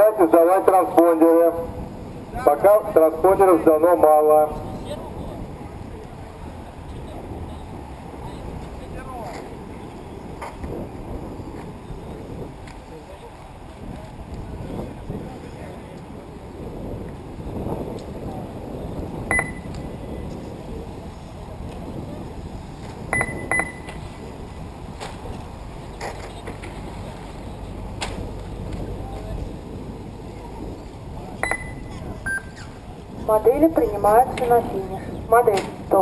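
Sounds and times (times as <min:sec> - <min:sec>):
outdoor noise: 0:00.0 - 0:36.0
short electronic beeps: 0:19.3 - 0:19.8, 0:23.1 - 0:24.0, 0:31.4 - 0:32.6.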